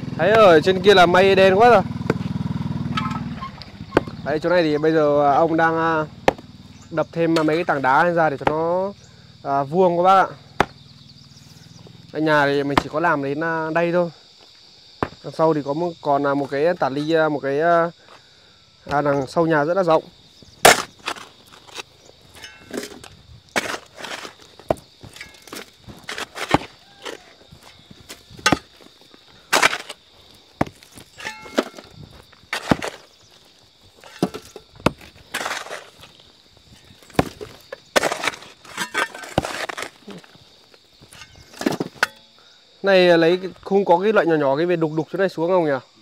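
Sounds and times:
hand tools striking rock: 0:02.0 - 0:04.3, 0:06.2 - 0:06.5, 0:07.2 - 0:08.8, 0:10.6 - 0:10.8, 0:15.0 - 0:15.3, 0:20.6 - 0:33.4, 0:34.0 - 0:40.4, 0:41.0 - 0:42.4
loose soil scraping: 0:02.0 - 0:05.8, 0:06.8 - 0:08.8, 0:20.4 - 0:42.3.

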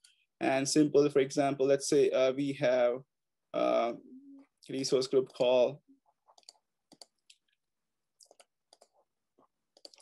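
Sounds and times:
computer mouse clicks: 0:06.3 - 0:07.5, 0:08.2 - 0:09.0, 0:09.7 - 0:10.0.

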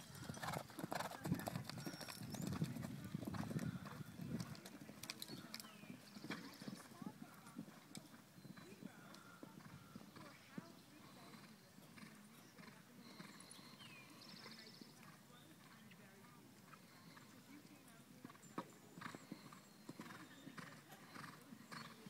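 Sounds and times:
distant hoofbeats on sand: 0:00.0 - 0:22.0.

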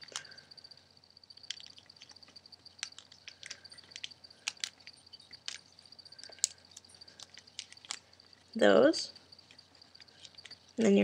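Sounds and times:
paper crinkling: 0:01.4 - 0:11.0.

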